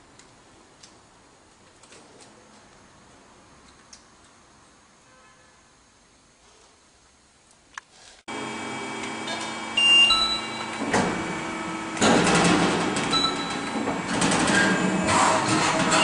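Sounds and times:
press brake machine hum: 8.3s - 16.0s.

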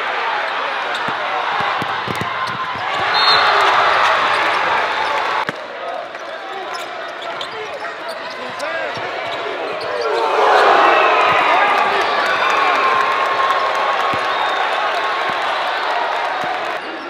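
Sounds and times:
crowd noise: 0.0s - 17.0s.

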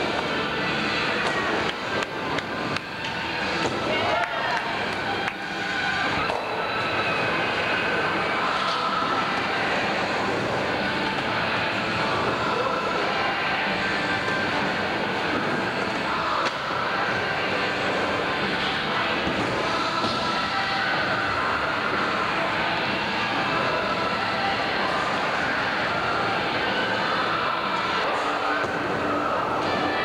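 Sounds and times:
onlookers' voices: 0.0s - 30.0s.

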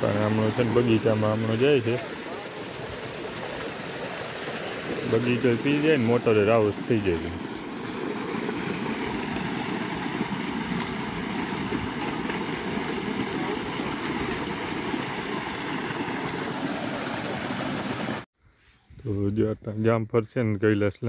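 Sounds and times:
water gushing and splashing onto stones: 0.0s - 18.3s.

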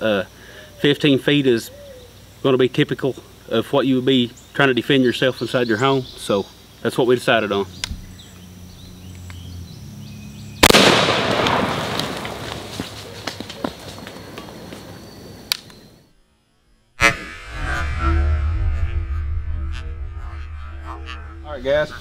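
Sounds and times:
loud burst: 10.6s - 12.4s
shotgun shot with echo: 10.6s - 12.5s.

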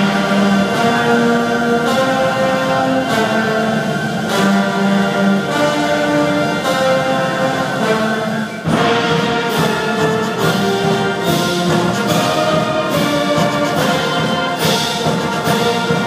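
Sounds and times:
orchestral ensemble chords: 0.0s - 16.0s.

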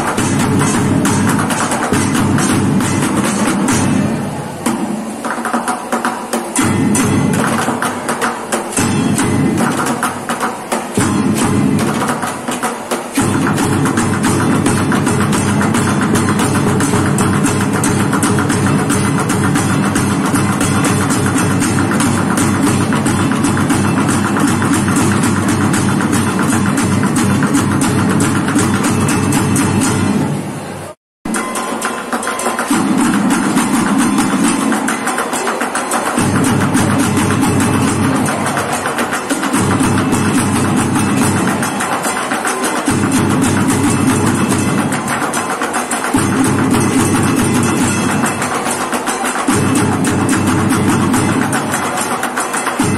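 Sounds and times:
drumming on plastic buckets: 0.0s - 30.2s, 31.3s - 52.9s.

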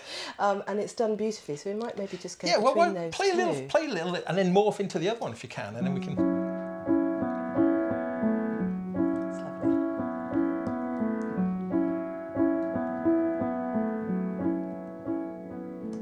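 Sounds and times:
piano chords: 5.8s - 16.0s.

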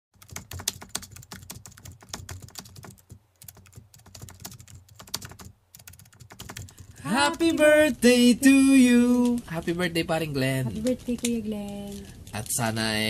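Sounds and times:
keyboard typing: 0.2s - 7.7s.

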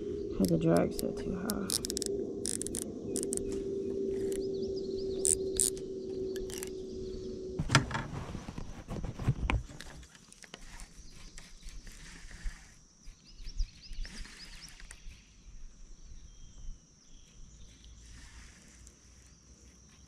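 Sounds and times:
steady hum: 0.0s - 10.0s
fishing reel drag clicking: 0.4s - 3.6s, 4.2s - 4.5s, 5.2s - 6.8s.

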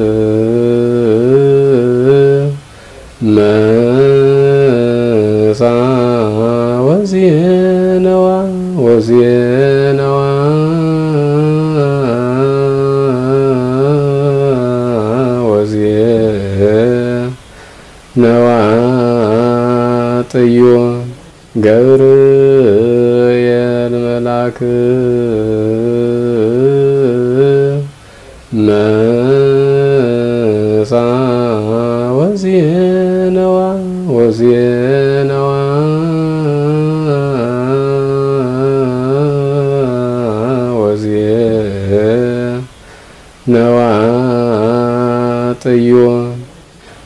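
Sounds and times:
man singing hymn unaccompanied: 0.0s - 47.0s
quick breath: 2.6s - 3.2s, 17.5s - 18.1s, 28.0s - 28.5s, 42.8s - 43.4s, 46.7s - 47.0s.

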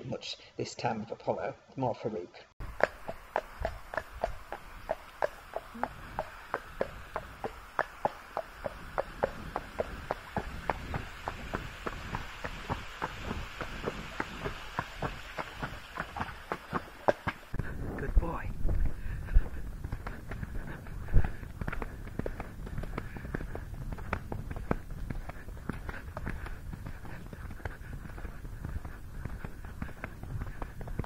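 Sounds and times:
faint steady hiss: 0.0s - 31.0s
horse hooves clopping on tarmac: 2.6s - 31.0s.

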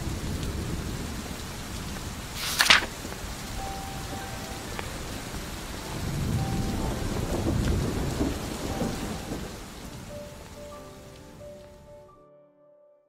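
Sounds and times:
thunder rumbling: 0.0s - 12.0s
steady rain: 0.0s - 12.1s.

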